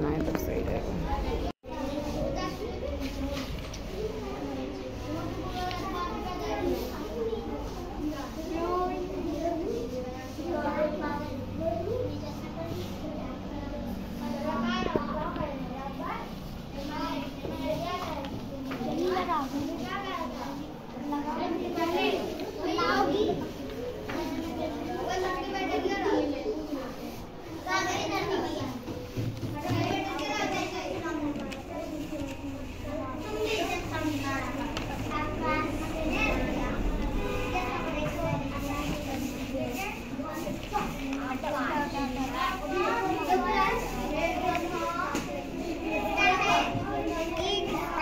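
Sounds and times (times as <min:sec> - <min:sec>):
children chattering and calling out: 0:00.0 - 0:48.0.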